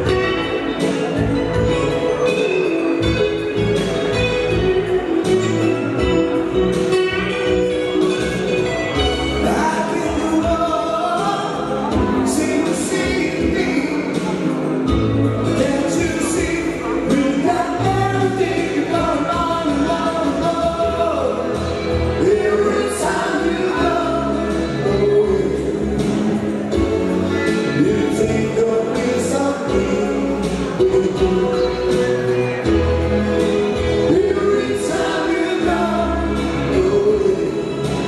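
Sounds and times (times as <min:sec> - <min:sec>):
bass line: 0:00.0 - 0:38.0
electric guitar: 0:00.0 - 0:38.0
keyboard synthesizer: 0:00.0 - 0:38.0
live pop-rock music: 0:00.0 - 0:38.0
person singing: 0:00.0 - 0:38.0.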